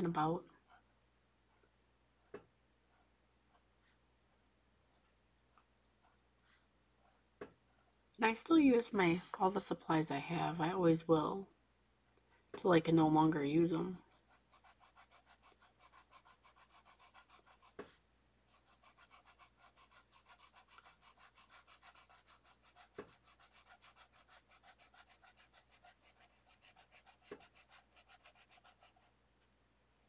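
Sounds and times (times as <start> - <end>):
marker scratching on paper: 0.0 - 0.9, 1.5 - 8.0, 13.8 - 29.2.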